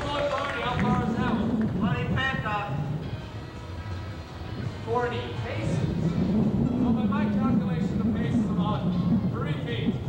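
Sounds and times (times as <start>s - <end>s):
boat engine droning: 0.0s - 10.0s
indistinct voices: 0.0s - 10.0s.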